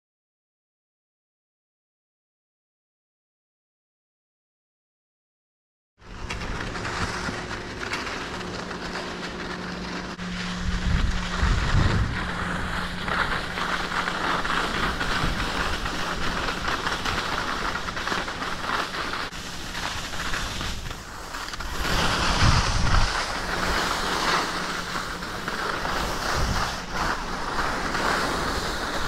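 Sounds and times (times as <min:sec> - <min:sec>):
skis scraping over snow: 0:06.0 - 0:29.0
steady low hum: 0:06.0 - 0:29.0
wind buffeting microphone: 0:09.3 - 0:17.2, 0:20.5 - 0:27.6.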